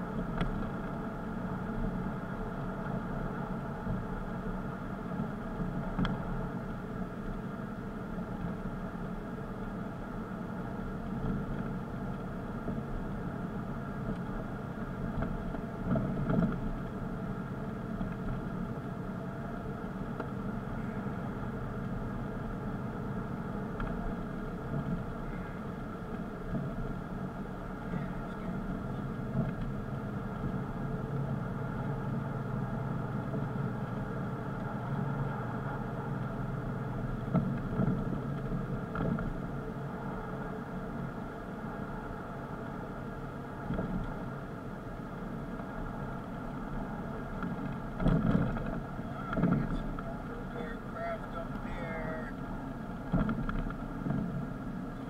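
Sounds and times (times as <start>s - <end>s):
car engine humming: 0.0s - 55.0s
tyre and road noise: 0.0s - 55.0s.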